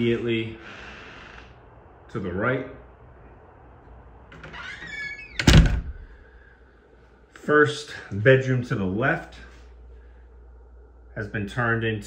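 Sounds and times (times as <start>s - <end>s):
door shutting with a thud: 4.3s - 6.1s
door squeaking: 4.3s - 6.1s.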